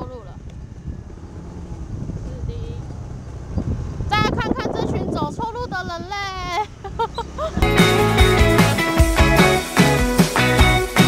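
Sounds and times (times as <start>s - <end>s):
wind on microphone: 0.0s - 7.6s
scooter engine: 0.0s - 11.0s.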